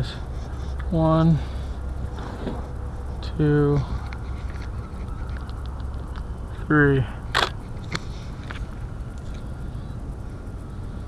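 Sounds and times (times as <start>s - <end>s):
background hiss: 0.0s - 11.0s
camera shutter snap: 7.4s - 7.6s.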